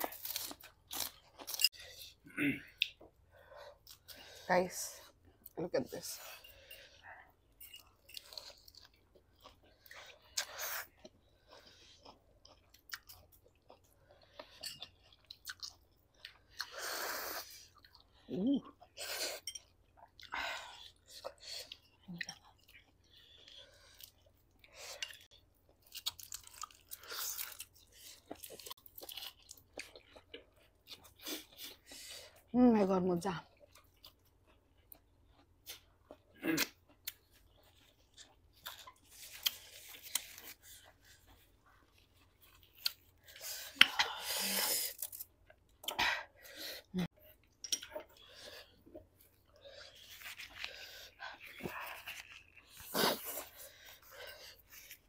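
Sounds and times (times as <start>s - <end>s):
people chewing noodles: 0.0s - 55.0s.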